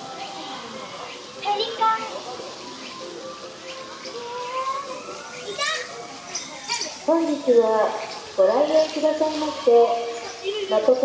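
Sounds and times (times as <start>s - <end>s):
children's voices and chatter: 0.0s - 11.0s.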